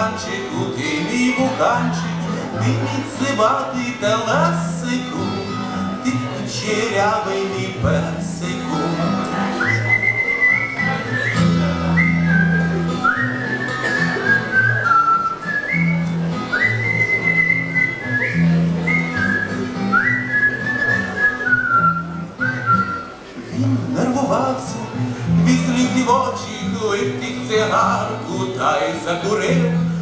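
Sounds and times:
acoustic guitar: 0:00.0 - 0:30.0
man whistling a melody: 0:08.6 - 0:23.2.

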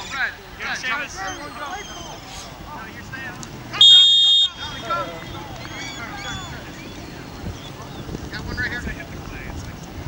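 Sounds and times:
players shouting: 0:00.0 - 0:09.4
referee's whistle blast: 0:03.8 - 0:04.8.

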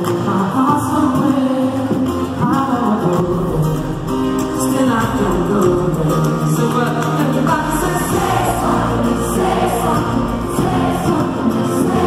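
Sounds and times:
live pop band with vocals: 0:00.0 - 0:12.0.

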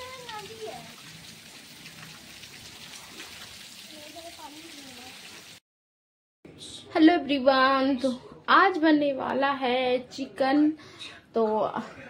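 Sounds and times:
rain falling on water: 0:00.0 - 0:05.6.

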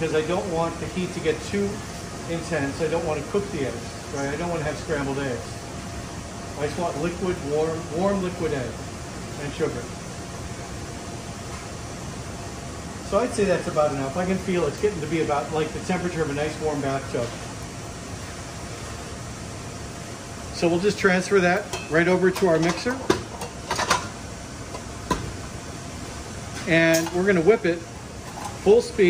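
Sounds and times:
fan and ventilation hiss: 0:00.0 - 0:29.0.

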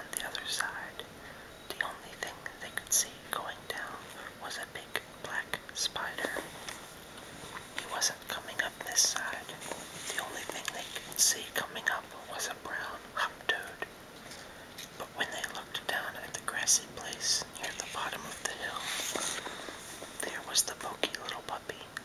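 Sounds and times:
man whispering: 0:00.0 - 0:01.1, 0:01.7 - 0:06.4, 0:07.8 - 0:13.9, 0:15.0 - 0:19.4, 0:20.2 - 0:22.0.

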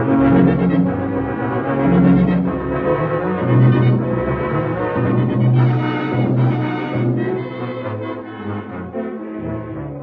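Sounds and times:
orchestral music low notes: 0:00.0 - 0:10.0.

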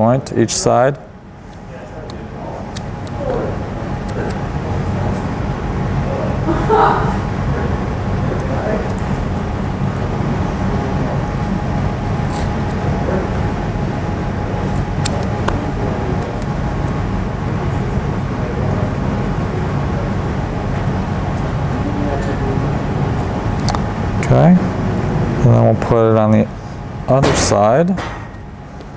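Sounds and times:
low hum and hiss: 0:00.0 - 0:28.9.

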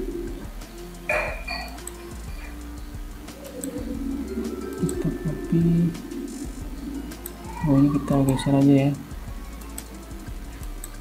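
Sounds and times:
pigeon cooing: 0:00.0 - 0:00.4, 0:03.4 - 0:09.1.

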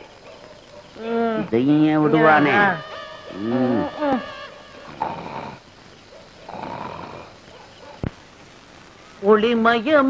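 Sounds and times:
man snoring: 0:04.9 - 0:05.6, 0:06.5 - 0:07.4.

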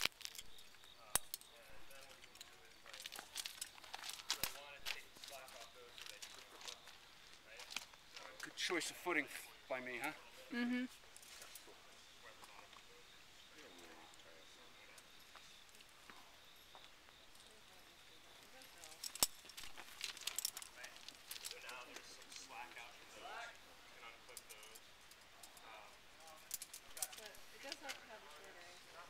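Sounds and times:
faint voices talking: 0:01.0 - 0:29.0.

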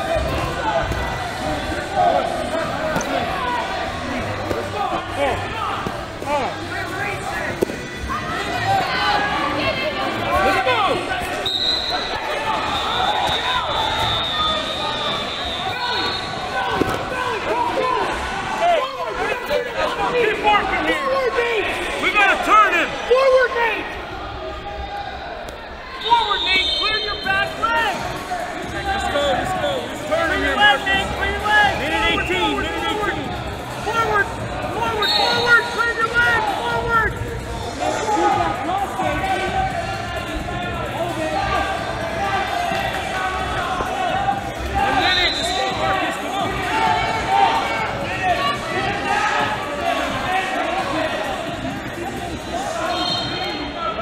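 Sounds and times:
echoing crowd voices and shouts: 0:00.0 - 0:54.0.

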